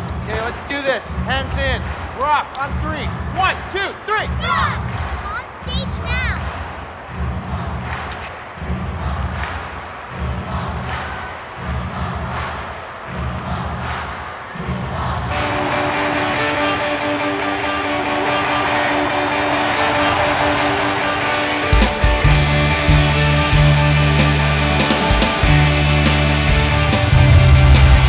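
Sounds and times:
sustained rock chord: 15.4s - 28.0s
heavy low beat: 22.0s - 28.0s.

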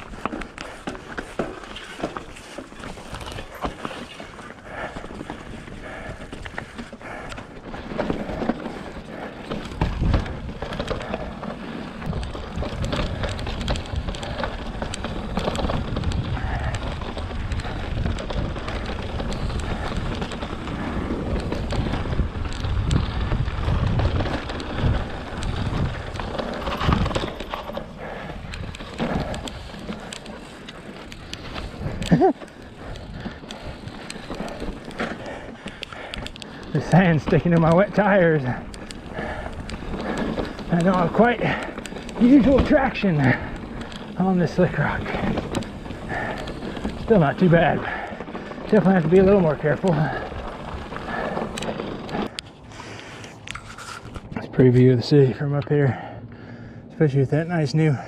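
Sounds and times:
bike rattling and knocking: 0.0s - 58.0s
bike tyres on rock: 0.0s - 58.0s.

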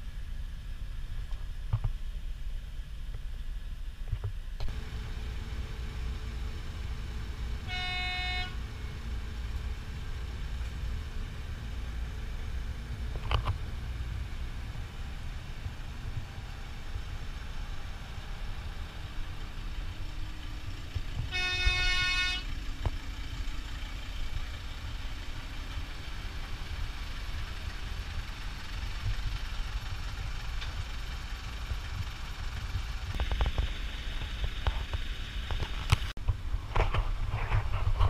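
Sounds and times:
low rumble of ferry: 0.0s - 38.0s
ship horn steady note: 7.5s - 8.8s, 21.3s - 22.6s.

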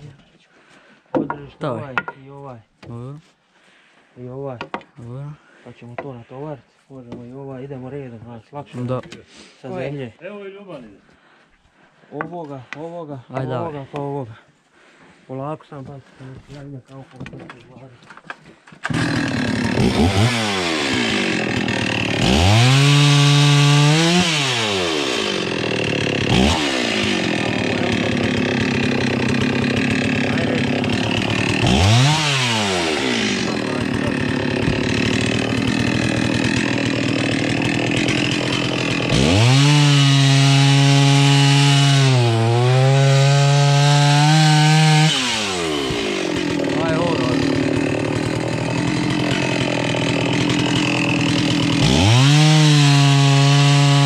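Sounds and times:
chainsaw revving: 18.9s - 54.0s.

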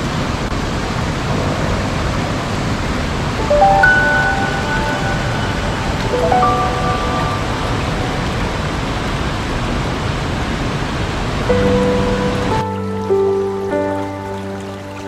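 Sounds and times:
waterfall rushing: 0.0s - 15.0s
slow soft music: 3.4s - 9.1s, 11.5s - 15.0s.

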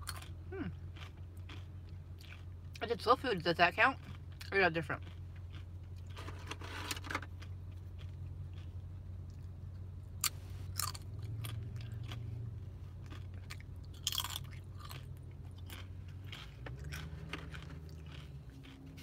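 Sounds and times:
chewing tortilla chip: 0.0s - 2.8s, 3.4s - 19.0s.

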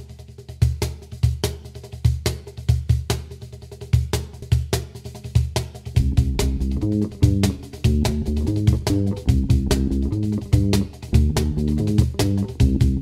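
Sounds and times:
drum kit beat: 0.0s - 13.0s
plucked bass line: 6.0s - 13.0s.

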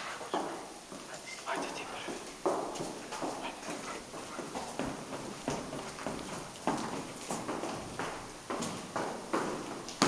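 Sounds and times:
footsteps going down stairs: 0.0s - 10.0s.

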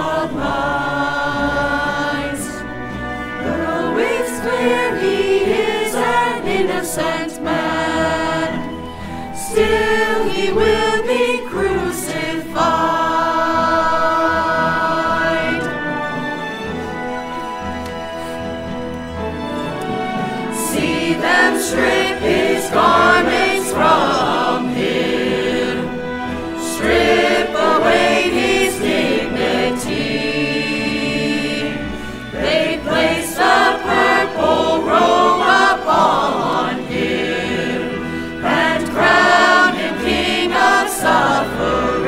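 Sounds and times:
mixed choir singing: 0.0s - 17.0s, 19.2s - 42.0s
instrumental accompaniment: 0.0s - 42.0s.

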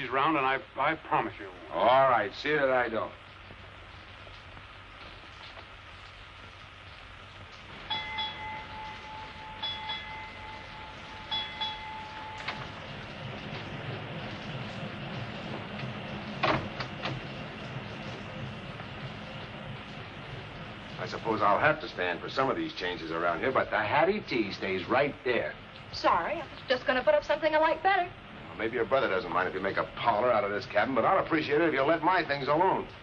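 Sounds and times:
steam boat churning: 0.0s - 33.0s
low rumble: 3.2s - 22.6s.

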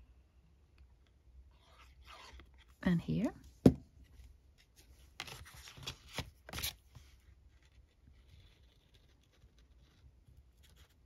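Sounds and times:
paper rustling and rubbing: 4.6s - 11.0s.

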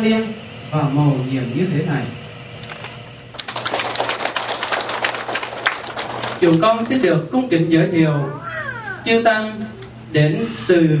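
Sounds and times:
crowd applauding: 3.3s - 6.9s.

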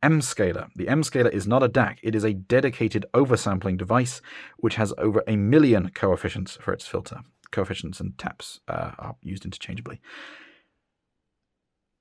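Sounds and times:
man breathing out: 4.2s - 4.6s, 10.0s - 10.7s.

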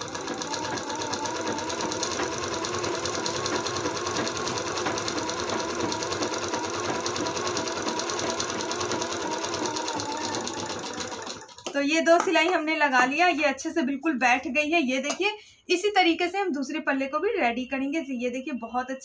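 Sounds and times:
sewing machine stitching: 0.0s - 11.8s.

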